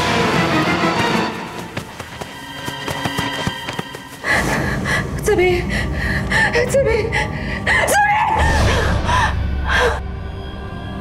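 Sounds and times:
low background music: 0.0s - 11.0s
woman crying out and gasping: 5.8s - 10.1s.

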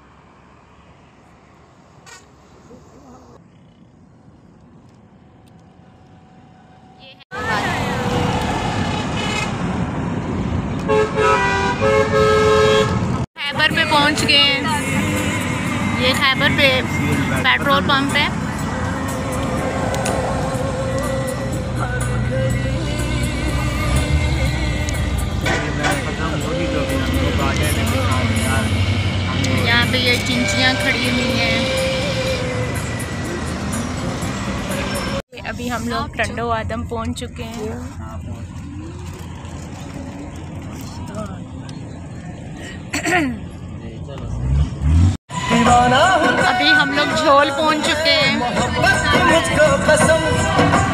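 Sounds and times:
car running noise: 0.0s - 45.2s
road and traffic noise: 0.0s - 50.9s
vehicle horns blasting: 7.3s - 9.8s, 10.8s - 35.2s.

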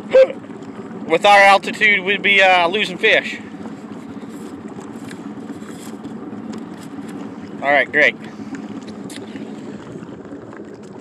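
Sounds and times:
motorboat engine running: 0.0s - 11.0s
rush of wind and water: 0.0s - 11.0s.

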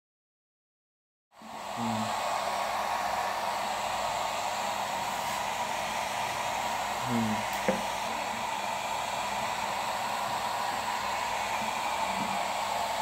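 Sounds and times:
hair dryer blowing: 1.4s - 13.0s.

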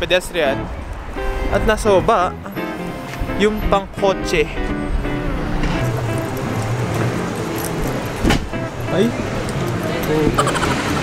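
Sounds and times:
street traffic rumble: 0.0s - 11.0s
background music with held notes: 0.5s - 11.0s.

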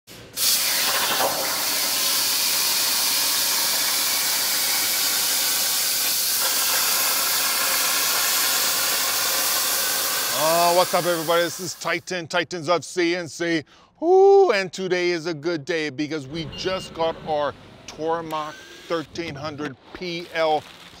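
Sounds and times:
plasma torch cutting metal: 0.4s - 12.0s, 20.1s - 21.0s.

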